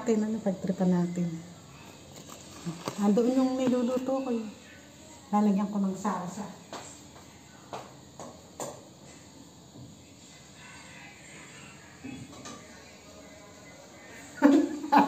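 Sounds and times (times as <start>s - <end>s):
woman's voice: 0.0s - 1.5s, 2.6s - 4.6s, 5.2s - 6.6s.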